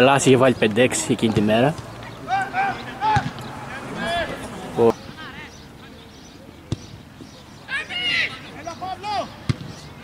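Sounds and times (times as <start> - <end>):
people shouting calls: 2.0 - 5.6, 7.7 - 9.4.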